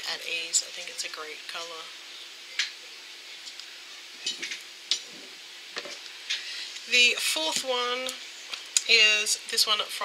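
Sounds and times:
electric fan hiss: 0.0s - 10.0s.

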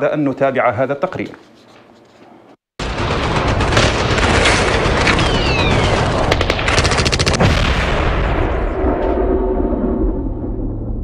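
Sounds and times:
automatic gunfire burst: 2.8s - 7.6s
steady deep rumble: 4.8s - 11.0s
low falling whoosh: 8.1s - 11.0s.

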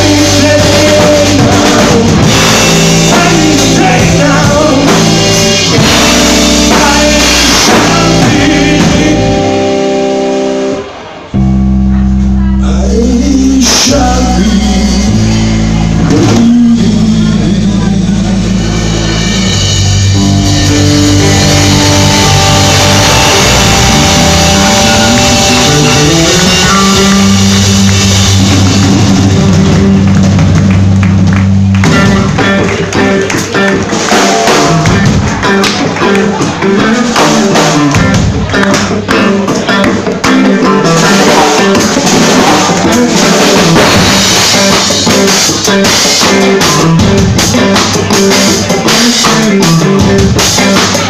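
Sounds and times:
person singing: 0.0s - 11.0s, 11.9s - 30.0s, 31.8s - 51.0s
drum kit: 0.0s - 51.0s
electric guitars: 0.0s - 51.0s
live rock band playing: 0.0s - 51.0s.

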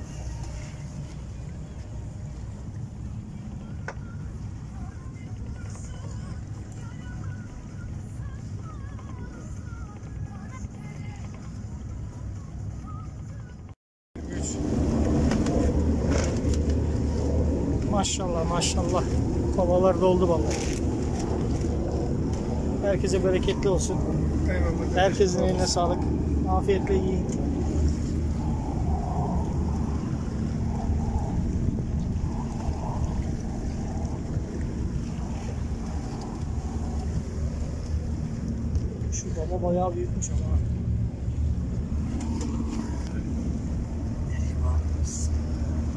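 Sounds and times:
water noise: 0.0s - 13.4s, 14.2s - 45.9s
boat engine humming: 0.0s - 45.9s
outboard motor rumbling: 0.0s - 45.9s
wind: 0.0s - 45.9s.

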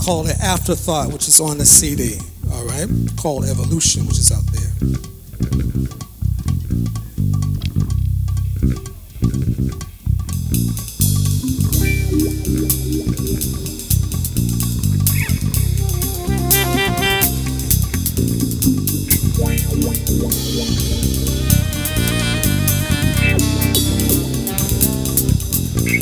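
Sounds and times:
drum kit with cymbals: 0.0s - 26.0s
electric bass line: 0.0s - 26.0s
jazz band playing: 0.0s - 26.0s
saxophone run of notes: 11.4s - 26.0s.

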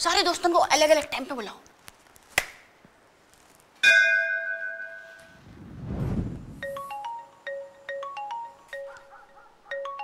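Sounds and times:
low whoosh: 5.4s - 6.8s.

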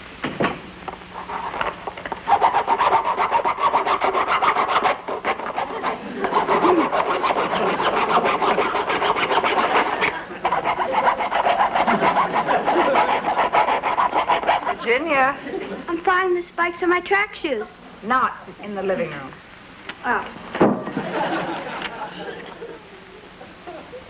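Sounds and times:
rapid scraping strokes: 1.1s - 15.2s.

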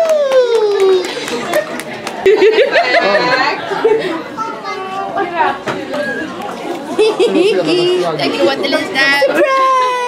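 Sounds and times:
people chattering excitedly: 0.6s - 10.0s.

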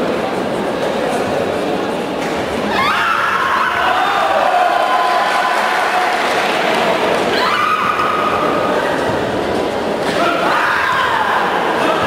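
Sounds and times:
people shouting high-pitched: 10.2s - 12.0s.

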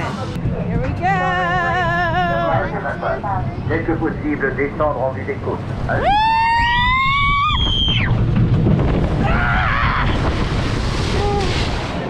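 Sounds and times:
rushing rumble of ride: 0.0s - 12.0s
riders screaming: 6.0s - 8.2s, 9.2s - 10.4s
boat splashing into water: 6.5s - 12.0s.

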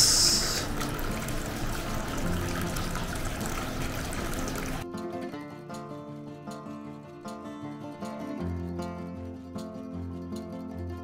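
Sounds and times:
water flowing: 0.0s - 4.8s
acoustic guitar music: 0.0s - 11.0s.

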